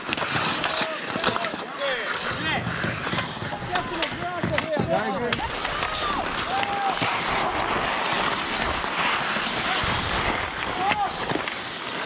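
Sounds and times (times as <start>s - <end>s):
hockey skates scraping ice: 0.0s - 12.0s.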